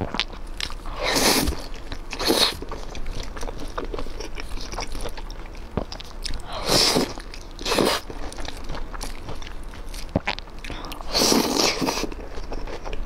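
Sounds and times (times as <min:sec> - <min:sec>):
chewing crunchy food: 0:00.0 - 0:13.0.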